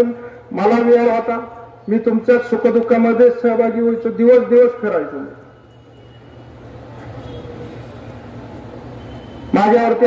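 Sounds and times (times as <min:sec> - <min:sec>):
man's voice: 0:00.0 - 0:05.4, 0:09.6 - 0:10.0
faint background noise: 0:00.0 - 0:10.0.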